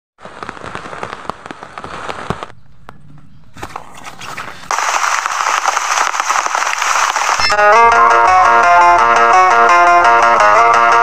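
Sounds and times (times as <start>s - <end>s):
rain tapping on plastic tarp: 4.4s - 7.5s
heavy downpour hiss: 4.7s - 7.5s.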